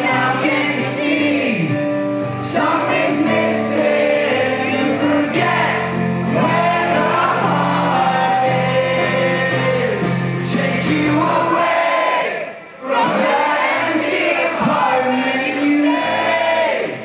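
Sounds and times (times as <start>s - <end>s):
person singing: 0.0s - 11.9s
amplified acoustic guitar: 0.0s - 17.0s
crowd singing along: 0.0s - 17.0s.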